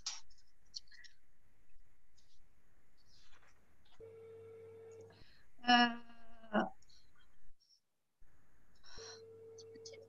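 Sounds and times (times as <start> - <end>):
faint steady tone: 4.0 - 7.5, 8.2 - 10.0.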